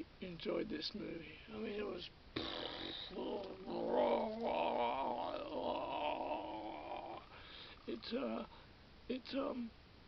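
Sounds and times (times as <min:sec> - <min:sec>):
man's drawn-out vocal exclamation: 0:02.4 - 0:07.3.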